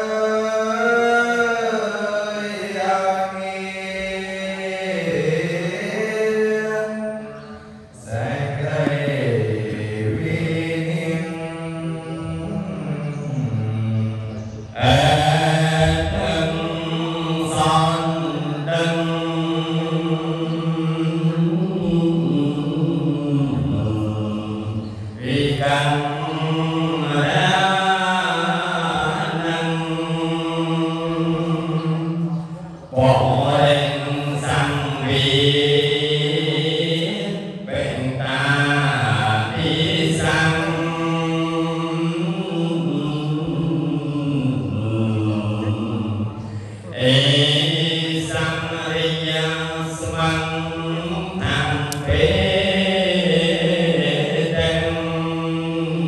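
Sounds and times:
man chanting into microphone: 0.0s - 56.0s.

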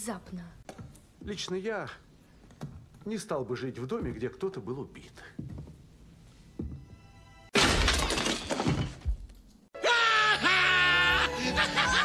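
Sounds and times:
loud shattering crash: 7.6s - 9.1s.

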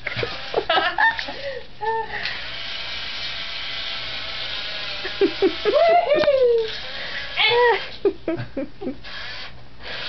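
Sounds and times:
small electric motor whirring: 2.1s - 8.1s, 9.0s - 10.0s
person exclaiming: 5.7s - 6.7s.

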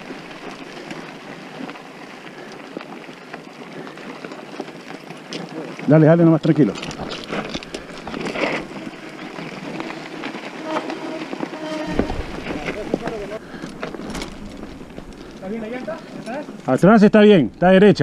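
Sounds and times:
bike rattling: 0.0s - 18.0s
tyres crunching over stones: 0.0s - 18.0s
deeper rumble: 6.7s - 10.2s, 11.8s - 17.7s.

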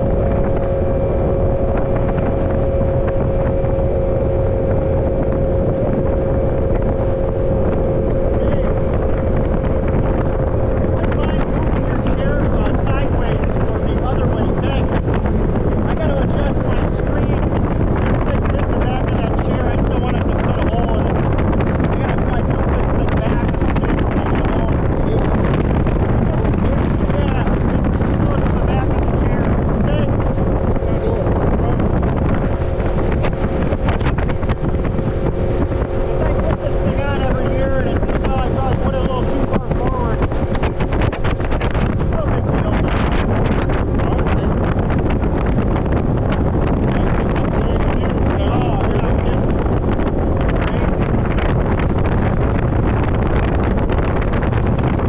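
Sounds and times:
outboard motor running: 0.0s - 55.0s
wind buffeting microphone: 0.0s - 55.0s.

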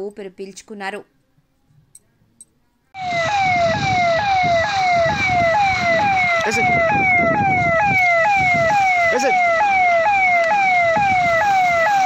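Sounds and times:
electronic siren wailing: 3.0s - 12.0s.

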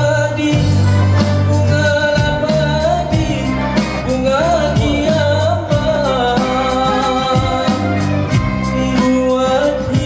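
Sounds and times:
live band playing pop song: 0.0s - 10.0s
person singing: 0.0s - 10.0s.

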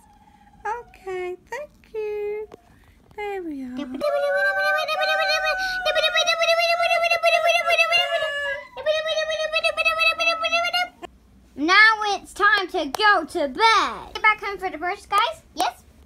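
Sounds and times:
child making wavering vocal sounds: 3.9s - 11.0s.

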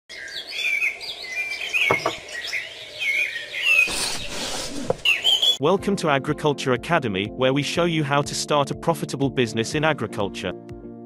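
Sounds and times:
songbirds chirping and warbling: 0.1s - 5.6s.

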